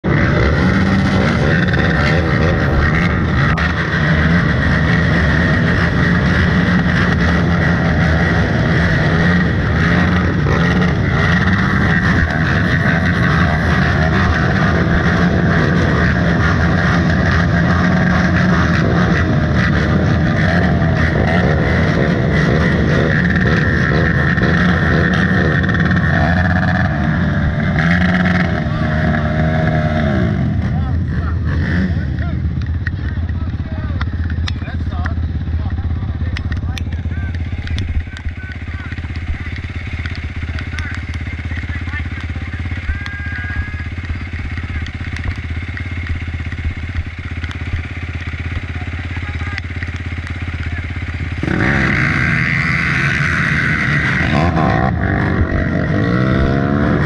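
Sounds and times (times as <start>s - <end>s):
atv engines idling: 0.0s - 57.0s
engine revving: 0.0s - 57.0s.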